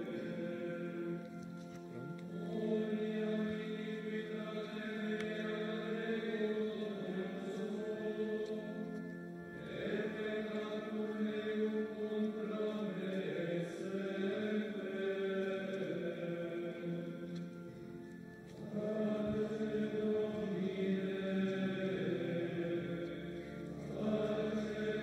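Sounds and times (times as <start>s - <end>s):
men chanting plainchant: 9.7s - 17.2s, 18.7s - 25.0s.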